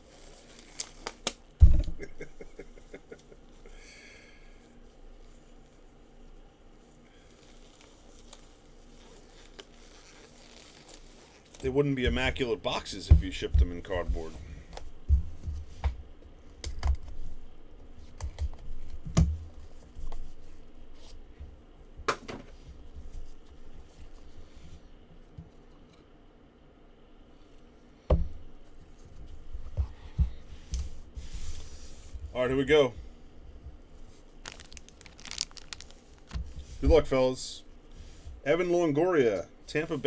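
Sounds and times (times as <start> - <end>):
plastic wrap crinkling and tearing: 0.0 - 1.4, 6.9 - 11.8, 34.0 - 36.6.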